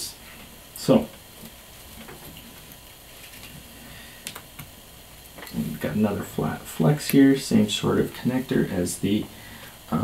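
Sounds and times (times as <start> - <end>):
room tone hiss: 0.0 - 10.0.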